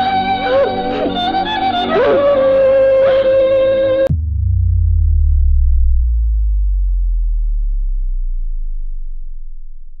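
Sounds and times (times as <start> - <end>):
deep bass boom: 4.0 - 10.0.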